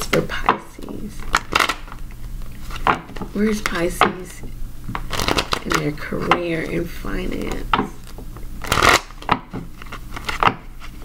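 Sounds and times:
cards shuffling: 0.8s - 3.9s, 4.9s - 11.0s.

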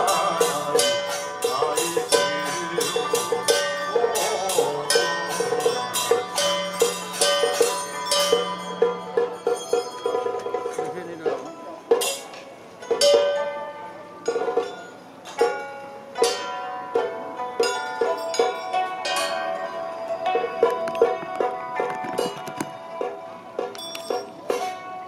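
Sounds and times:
held melodic notes: 0.0s - 25.0s
percussion strikes: 0.0s - 25.0s.

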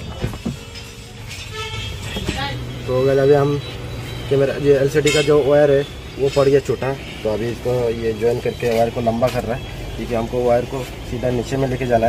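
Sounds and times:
short flat horn-like tone: 1.4s - 2.6s.

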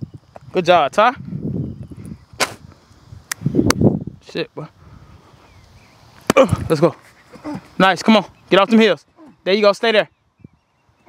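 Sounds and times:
sharp smack: 2.4s - 2.7s, 6.2s - 6.7s.

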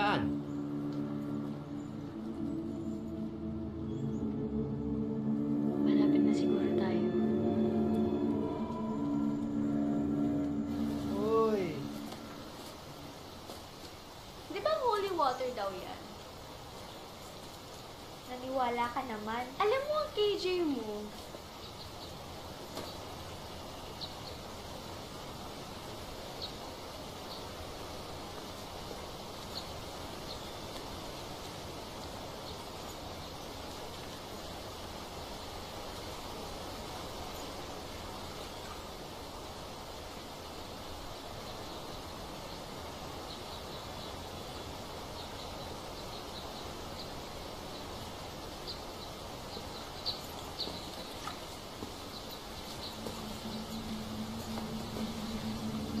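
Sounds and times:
rush of falling water: 10.7s - 56.0s.

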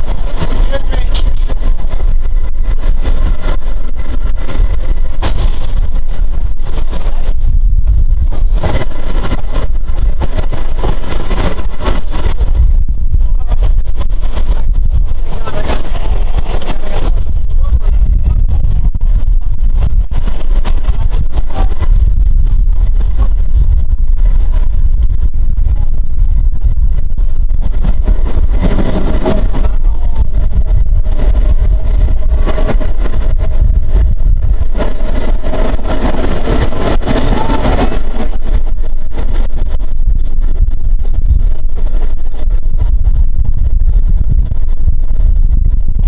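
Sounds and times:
train wheels rumbling on track: 0.0s - 46.0s.

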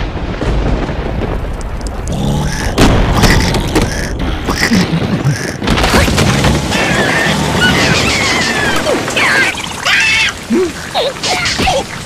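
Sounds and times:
steady rain: 0.0s - 12.0s.

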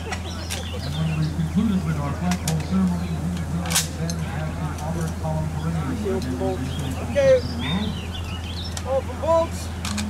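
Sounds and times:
indistinct voices talking: 0.0s - 10.0s
sharp crack: 3.6s - 4.2s.

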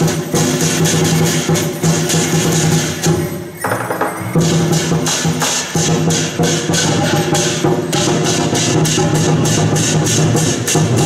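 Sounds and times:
drums and cymbals beating fast: 0.0s - 11.0s.

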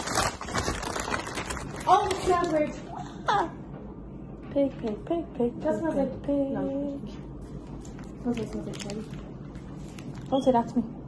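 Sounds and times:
paper bag rustling: 0.0s - 2.8s, 7.8s - 10.6s.

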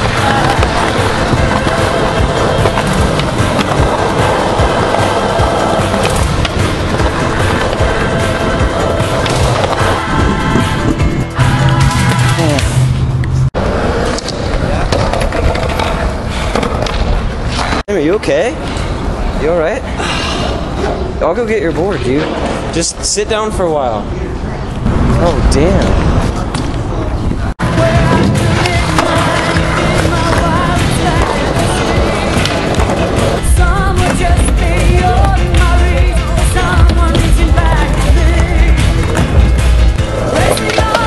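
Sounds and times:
skateboard clatter: 0.0s - 10.0s, 13.9s - 17.8s, 36.5s - 41.0s
skateboard wheels rolling on concrete: 0.0s - 12.4s, 13.5s - 17.8s, 24.6s - 41.0s.

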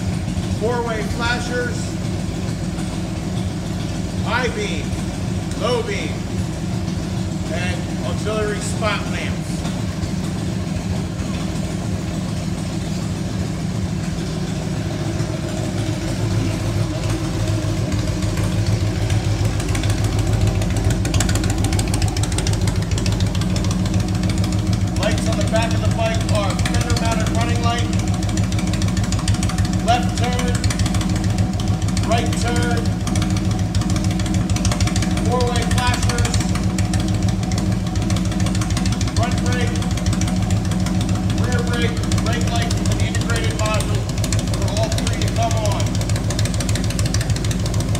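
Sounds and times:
motorcycle engine idling: 0.0s - 47.9s.

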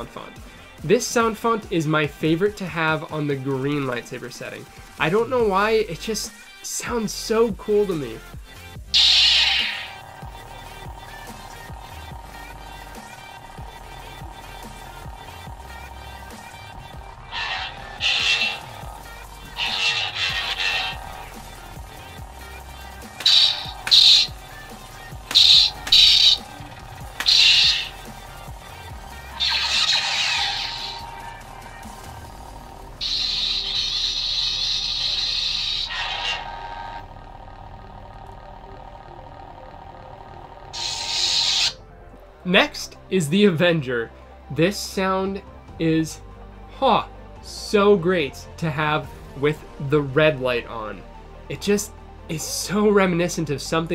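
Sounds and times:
lightsaber electronic hum: 6.8s - 43.0s.

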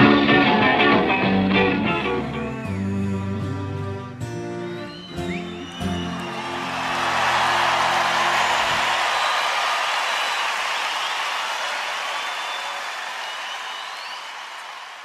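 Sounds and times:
whistles: 4.4s - 14.9s
audience applauding and cheering: 4.6s - 15.0s.

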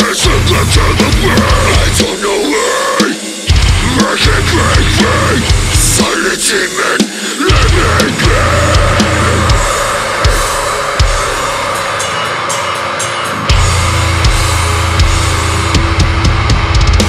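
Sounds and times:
distorted electric guitars: 0.0s - 17.0s
drum kit: 0.0s - 17.0s.

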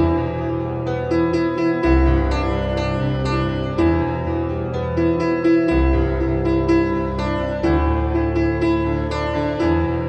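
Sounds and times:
gentle solo piano: 0.0s - 10.0s.

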